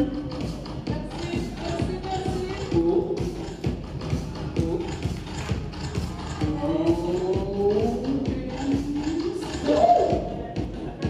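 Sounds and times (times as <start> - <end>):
electro dance music: 0.0 - 11.0.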